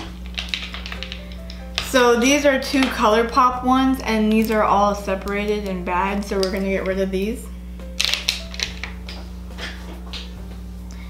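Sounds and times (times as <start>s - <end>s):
plastic tubes clicking and clattering: 0.2s - 1.9s
background music: 0.7s - 11.0s.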